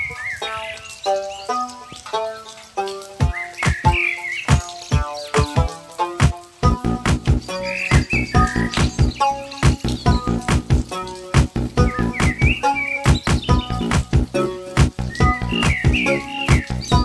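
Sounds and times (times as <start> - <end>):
instrumental background music: 0.0 - 17.0.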